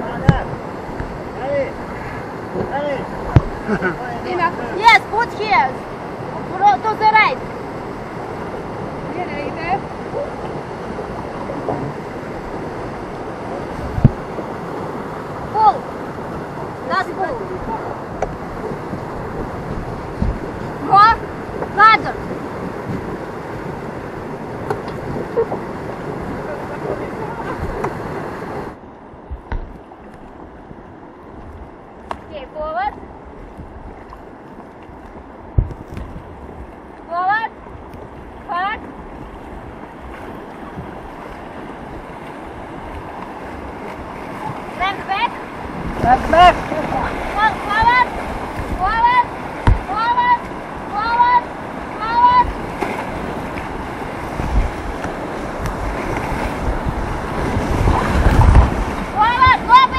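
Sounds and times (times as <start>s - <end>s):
river water rushing: 0.0s - 59.9s.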